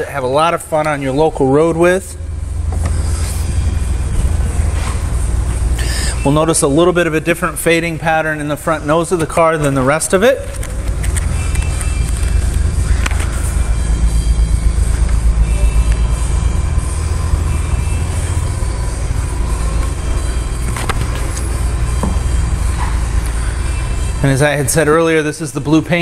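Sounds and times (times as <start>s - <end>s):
engine idling: 0.0s - 26.0s.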